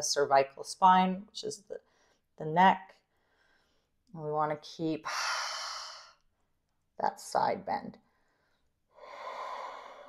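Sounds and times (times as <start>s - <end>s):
woman breathing: 1.8s - 2.3s, 3.1s - 4.0s, 8.0s - 10.0s.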